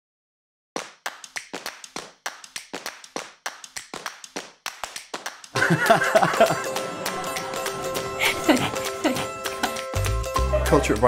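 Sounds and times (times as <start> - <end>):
rhythmic hand claps: 0.8 - 11.0.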